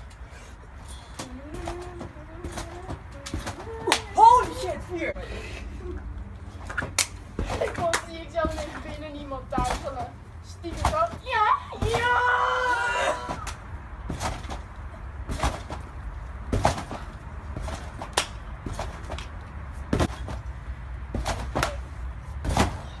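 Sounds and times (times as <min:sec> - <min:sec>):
thuds on trampoline mat: 0:01.2 - 0:04.8, 0:06.8 - 0:12.3, 0:13.2 - 0:19.2, 0:19.9 - 0:20.5, 0:21.1 - 0:23.0
boys shouting excitedly: 0:03.7 - 0:05.1, 0:10.9 - 0:13.5
long yell: 0:11.8 - 0:13.4.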